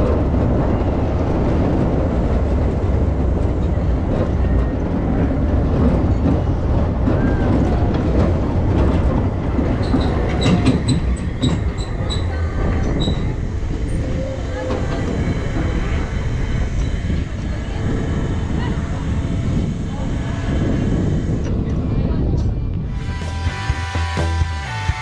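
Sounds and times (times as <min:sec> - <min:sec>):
rumble of wheels on rail: 0:00.0 - 0:25.0
wind: 0:00.0 - 0:25.0.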